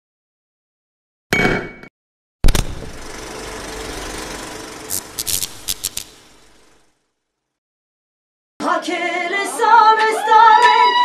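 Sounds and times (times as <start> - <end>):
sharp hit: 2.4 - 6.8
film projector whirring: 2.7 - 6.9.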